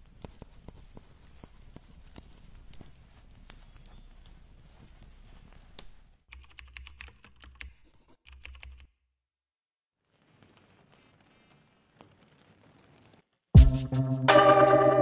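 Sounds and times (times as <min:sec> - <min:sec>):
quiet irregular clicks and taps: 0:00.0 - 0:08.9.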